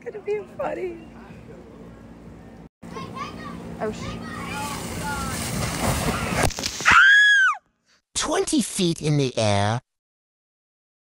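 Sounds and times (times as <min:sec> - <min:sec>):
water rushing and splashing: 0:04.4 - 0:06.5.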